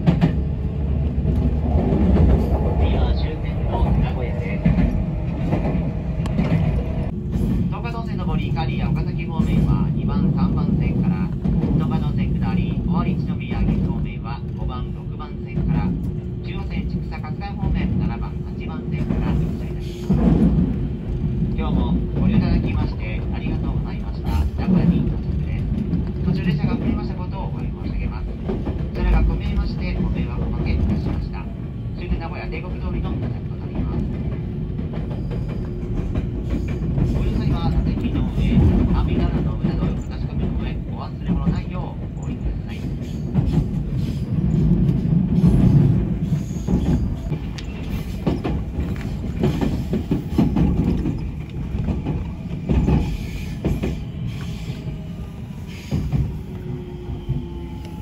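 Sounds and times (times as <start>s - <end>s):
train rumbling: 0.0s - 58.0s
voices: 2.5s - 7.0s.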